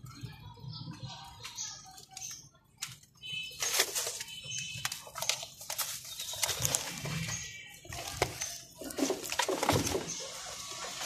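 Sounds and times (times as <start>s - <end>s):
plastic sacks rustling and crackling: 3.2s - 11.0s.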